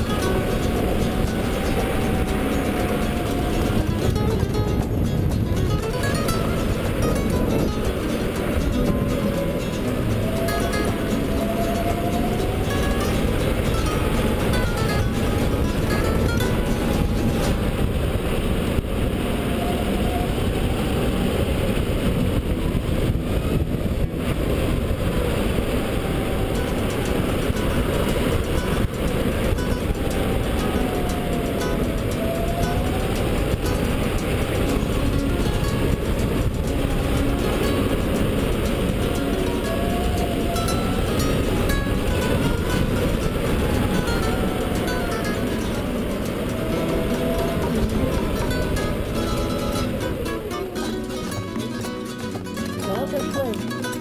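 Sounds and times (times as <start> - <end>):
wind rushing on microphone: 0.0 - 54.0.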